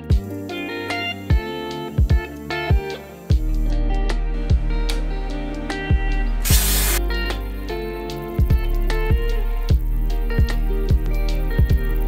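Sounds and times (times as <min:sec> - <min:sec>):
plucked and keyboard music: 0:00.0 - 0:12.0
deep kick drum beat: 0:02.0 - 0:03.6, 0:05.9 - 0:07.0, 0:08.4 - 0:12.0
loud burst of hiss: 0:06.4 - 0:07.0.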